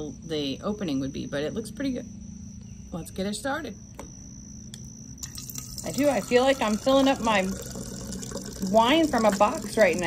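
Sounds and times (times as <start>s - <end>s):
liquid trickling into glass: 5.2s - 10.0s.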